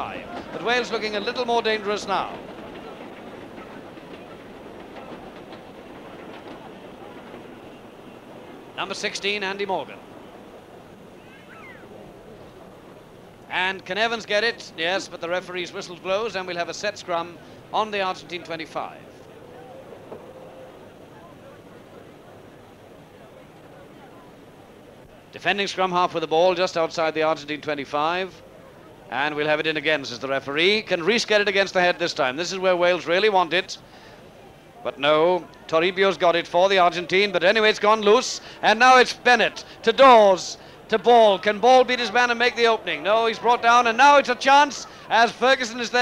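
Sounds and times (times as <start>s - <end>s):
steady soundtrack hiss: 0.0s - 46.0s.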